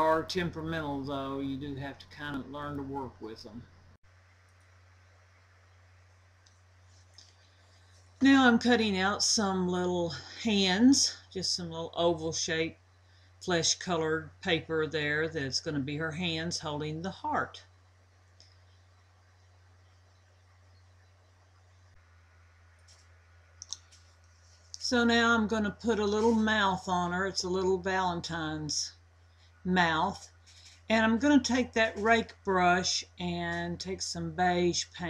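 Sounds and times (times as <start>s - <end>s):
low hum: 0.0s - 35.0s
faint clicks: 18.3s - 18.8s.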